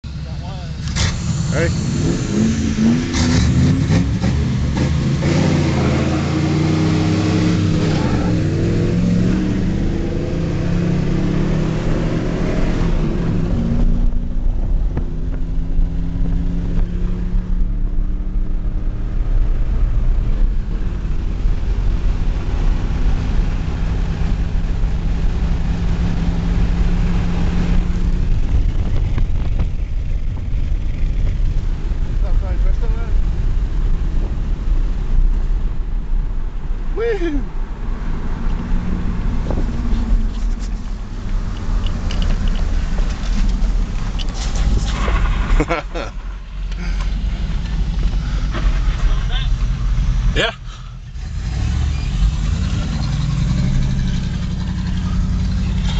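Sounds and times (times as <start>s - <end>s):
car engine accelerating hard: 0.1s - 36.3s, 37.0s - 55.9s.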